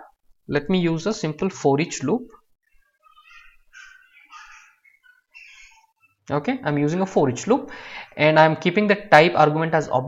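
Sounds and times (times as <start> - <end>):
faint animal calls: 2.6 - 6.2.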